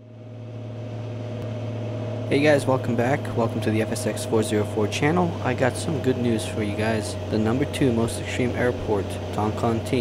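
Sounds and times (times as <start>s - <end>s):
airplane engine and propeller droning: 0.0s - 10.0s.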